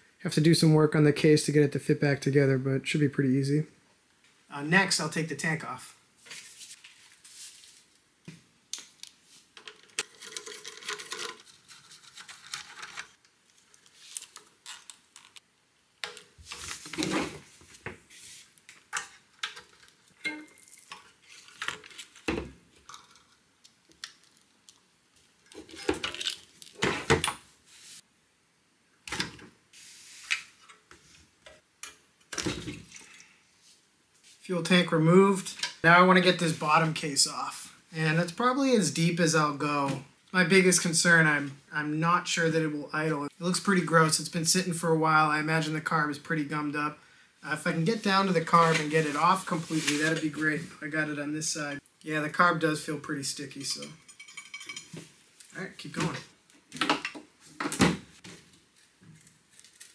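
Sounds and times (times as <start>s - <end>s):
tools and metal parts clinking: 9.6s - 11.5s, 53.8s - 55.0s.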